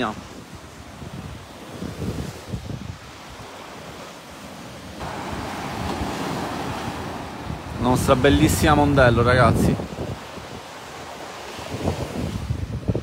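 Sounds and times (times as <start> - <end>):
small waves on sandy beach: 0.0 - 13.0
wind buffeting microphone: 0.0 - 13.0.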